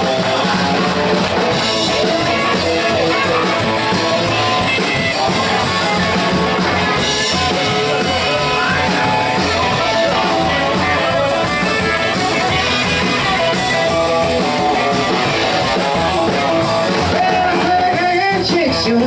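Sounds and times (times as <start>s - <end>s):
rockabilly band playing: 0.0s - 19.0s.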